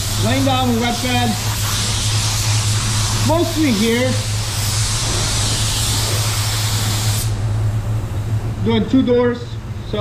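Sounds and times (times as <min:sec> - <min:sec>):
spray gun hissing: 0:00.0 - 0:07.4.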